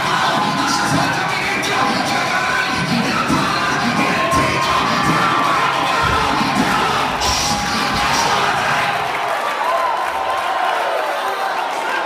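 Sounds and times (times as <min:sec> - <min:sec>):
congregation shouting and cheering: 0:00.0 - 0:12.0.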